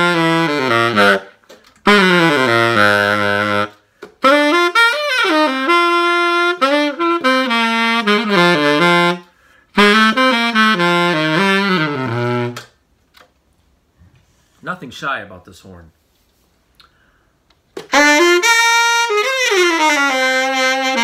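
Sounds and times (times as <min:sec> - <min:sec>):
tenor saxophone playing jazz: 0:00.0 - 0:12.8, 0:17.8 - 0:21.0
player breathing: 0:09.2 - 0:09.8, 0:16.8 - 0:17.5.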